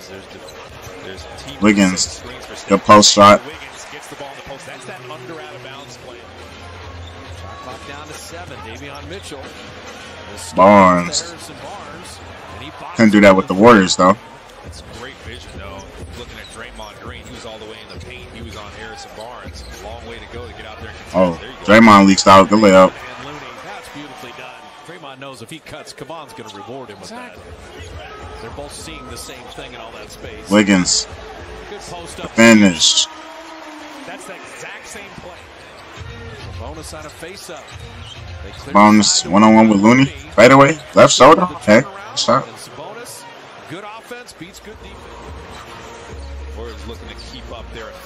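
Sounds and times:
crowd noise: 0.0s - 48.0s
commentator speaking: 1.2s - 5.6s, 10.4s - 14.2s, 16.2s - 24.4s, 28.4s - 31.1s, 31.7s - 33.1s, 38.5s - 45.0s.

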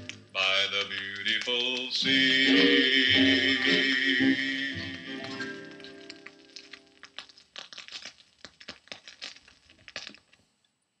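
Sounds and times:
song on record: 0.0s - 7.0s
vinyl record crackling and popping: 0.0s - 11.0s.

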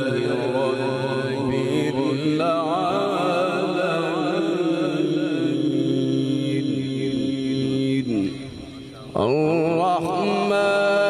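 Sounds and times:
man reciting melodically through loudspeakers: 0.0s - 11.0s.

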